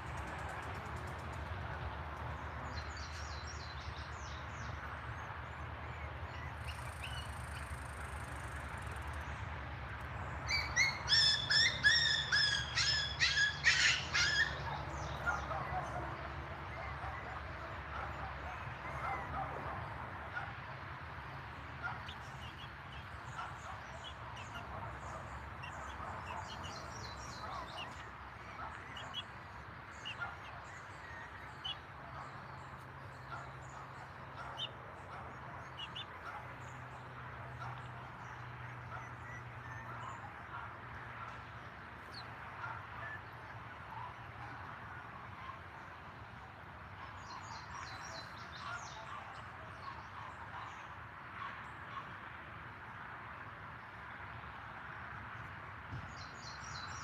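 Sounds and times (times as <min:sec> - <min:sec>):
puppies yipping and whimpering: 0:10.5 - 0:16.0.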